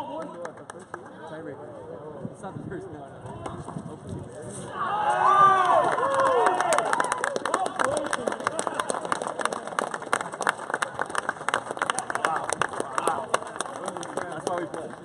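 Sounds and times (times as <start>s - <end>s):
men talking: 12.0s - 15.0s.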